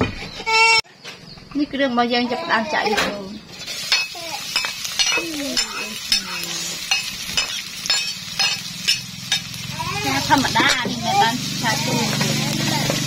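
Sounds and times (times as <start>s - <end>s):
metal spatula scraping wok: 2.7s - 13.0s
food sizzling in hot oil: 3.5s - 13.0s.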